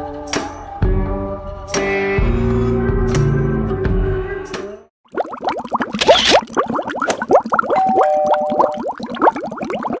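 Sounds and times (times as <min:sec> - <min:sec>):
cartoon bubbling bloops: 0:05.0 - 0:10.0.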